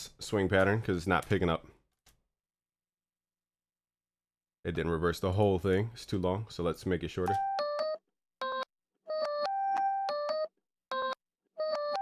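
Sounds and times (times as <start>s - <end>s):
synth keyboard melody: 7.3s - 12.0s.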